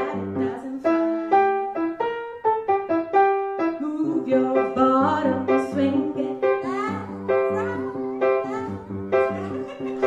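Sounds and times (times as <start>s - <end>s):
woman singing: 0.0s - 1.8s, 3.6s - 9.8s
grand piano: 0.0s - 10.0s.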